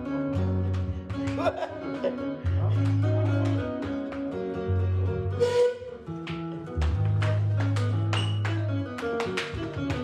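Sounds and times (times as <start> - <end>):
plucked electric guitar lines: 0.0 - 10.0.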